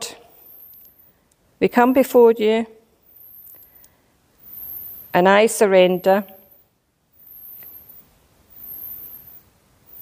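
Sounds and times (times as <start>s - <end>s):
soft clicks: 3.2s - 4.0s.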